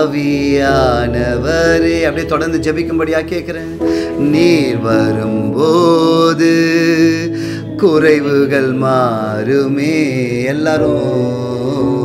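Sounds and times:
man singing: 0.0s - 12.0s
sustained music backing: 0.0s - 12.0s.

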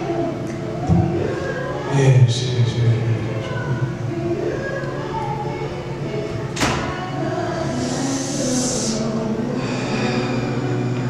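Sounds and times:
beatbox hiss: 7.6s - 11.0s
beatboxing hummed tone: 7.6s - 11.0s.

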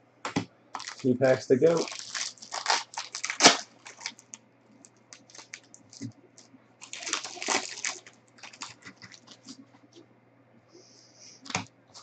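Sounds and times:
cards and wrapper crackling: 0.8s - 9.6s
foil wrapper crinkling: 0.8s - 9.6s.

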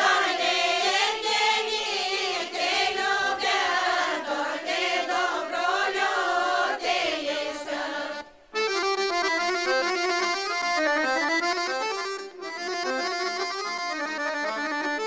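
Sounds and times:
women's folk choir singing: 0.0s - 8.5s.

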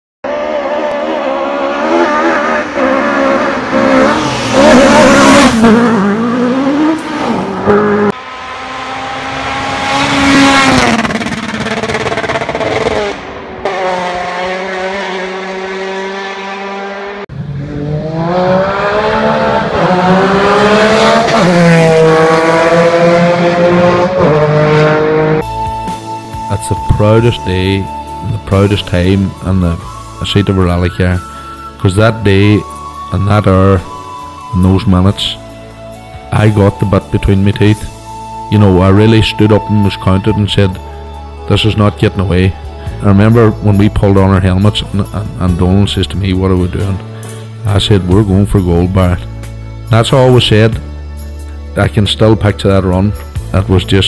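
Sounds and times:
rally car engines revving: 0.2s - 54.0s.

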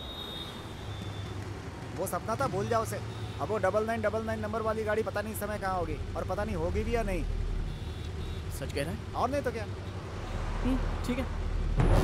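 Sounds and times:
motorcycle and car engines: 0.7s - 12.0s.

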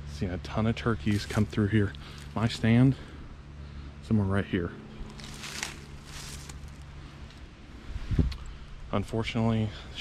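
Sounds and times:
footsteps through dry leaves: 1.0s - 2.4s, 5.0s - 7.0s.

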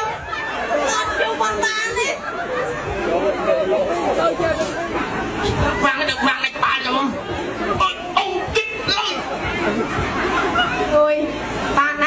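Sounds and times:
crowd chatter: 0.0s - 12.0s
people talking: 0.0s - 12.0s.

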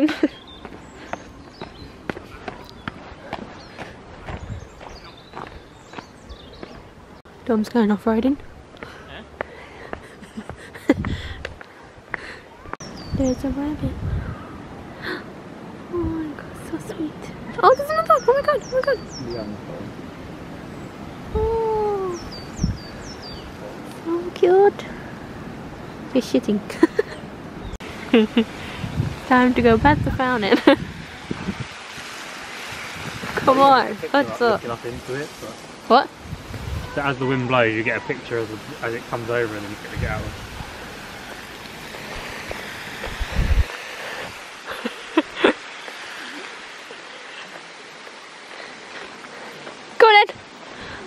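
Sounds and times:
footsteps on gritty stone steps: 0.1s - 7.0s, 8.4s - 12.9s
small bird chirping: 22.0s - 23.5s.

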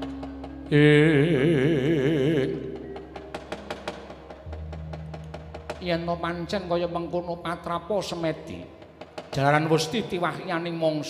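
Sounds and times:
low steady tone: 0.0s - 7.2s.

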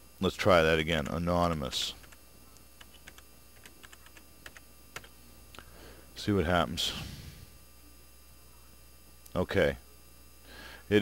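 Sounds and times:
low steady hum: 0.0s - 11.0s
computer keyboard keys clicking: 2.8s - 5.1s.

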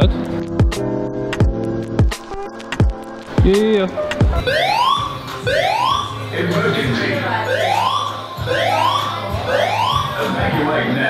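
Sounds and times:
fire alarm whoop tone: 4.4s - 6.2s, 7.5s - 10.3s.

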